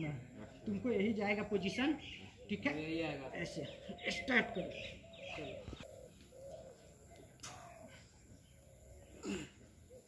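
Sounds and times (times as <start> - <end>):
dove cooing: 3.4 - 10.0.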